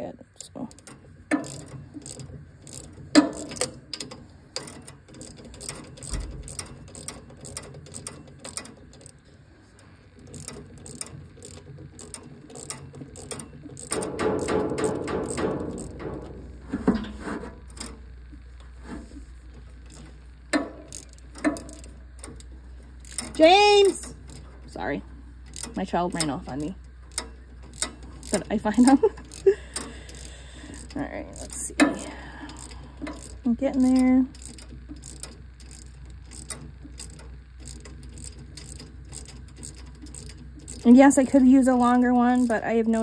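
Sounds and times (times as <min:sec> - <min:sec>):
ratchet wrench clicking: 0:00.4 - 0:09.2, 0:10.2 - 0:16.2, 0:19.8 - 0:24.5, 0:25.4 - 0:43.0.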